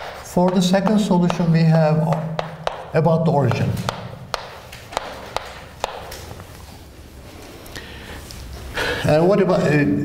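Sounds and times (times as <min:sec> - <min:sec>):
chalk tapping on chalkboard: 0:00.0 - 0:06.2.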